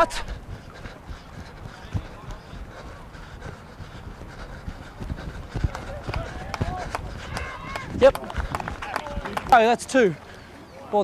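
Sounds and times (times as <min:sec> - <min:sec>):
running footsteps thudding: 0:00.0 - 0:09.6.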